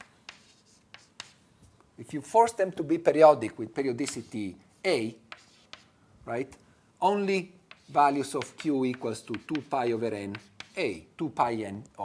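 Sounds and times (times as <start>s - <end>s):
chalk tapping on blackboard: 0.0s - 1.4s, 4.0s - 4.5s, 5.3s - 5.9s, 7.6s - 11.0s.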